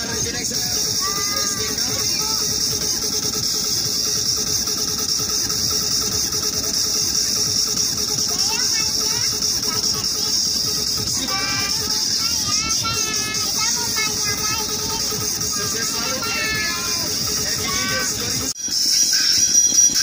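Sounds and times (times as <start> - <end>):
pulsing mechanical hum: 0.0 - 20.0
children's voices: 0.8 - 3.2, 8.1 - 18.5.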